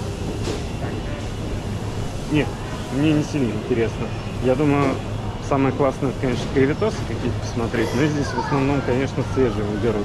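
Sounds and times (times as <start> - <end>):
freezers and ventilation humming: 0.0 - 10.0.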